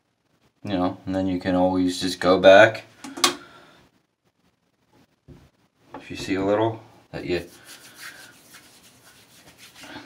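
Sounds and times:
hands rubbing through hair: 7.2 - 10.0.

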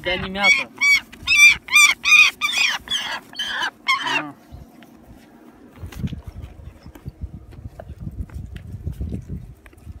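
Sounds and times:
young bird of prey crying: 0.0 - 4.4.

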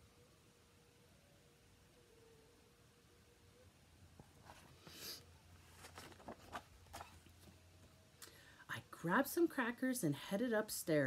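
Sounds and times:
book pages turning: 5.6 - 7.6.

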